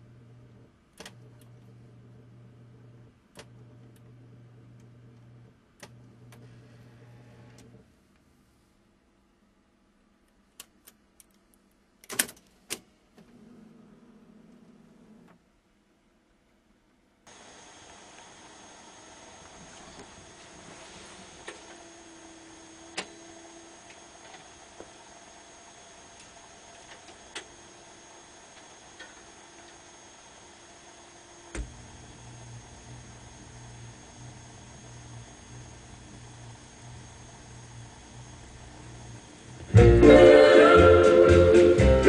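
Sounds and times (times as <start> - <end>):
faint mechanism whir: 0.0 - 8.4, 12.8 - 15.5, 17.2 - 39.8.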